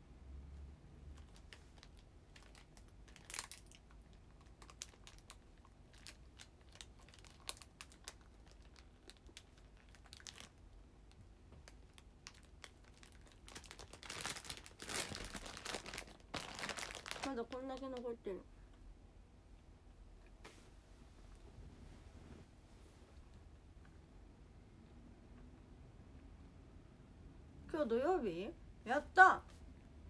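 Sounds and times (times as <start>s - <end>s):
plastic wrapper crinkling: 1.2s - 18.3s.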